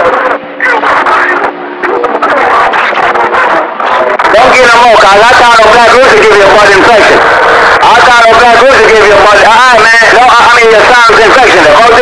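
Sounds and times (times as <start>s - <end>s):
choppy radio static: 0.0s - 12.0s
garbled radio voices: 0.0s - 12.0s.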